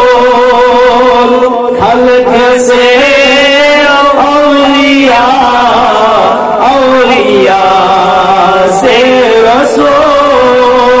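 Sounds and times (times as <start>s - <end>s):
man chanting in held notes: 0.0s - 11.0s.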